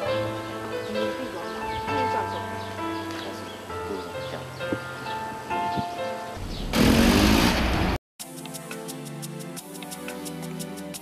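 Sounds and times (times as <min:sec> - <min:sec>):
soft background music: 0:00.0 - 0:06.4, 0:08.2 - 0:11.0.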